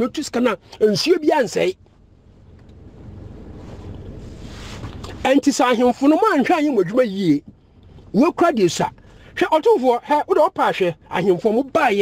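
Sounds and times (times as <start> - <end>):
low wind rumble on microphone: 1.8 - 5.3.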